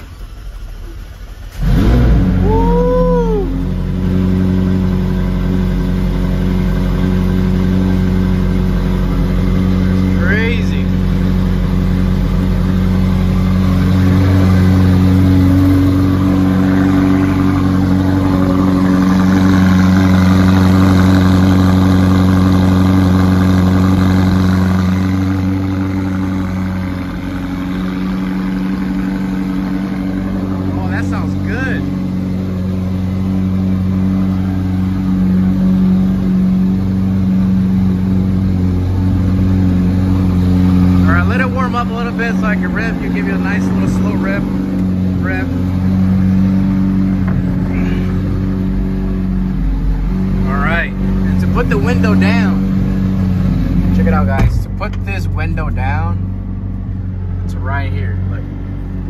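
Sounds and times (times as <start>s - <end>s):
car engine fast idle: 0.0s - 48.4s
car engine starting and revving: 0.0s - 59.0s.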